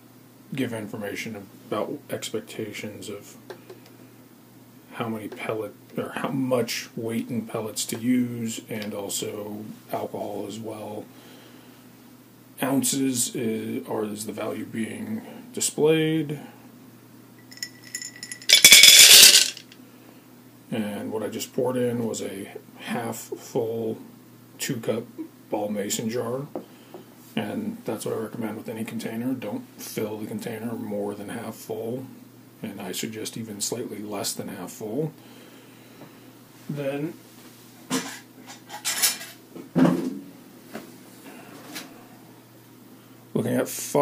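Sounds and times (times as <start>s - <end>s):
glass jar clinking: 17.5s - 19.6s
hard objects clattering: 17.5s - 19.8s
wood pellets pouring into cup: 17.6s - 19.6s.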